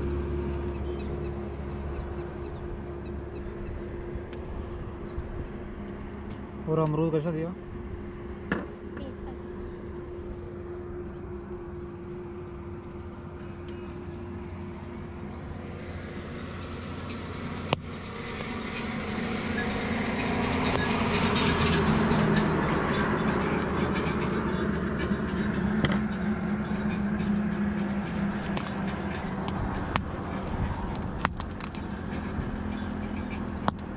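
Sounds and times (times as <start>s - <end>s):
steady engine hum: 0.0s - 33.9s
vehicle engine and tyre noise: 0.0s - 33.9s.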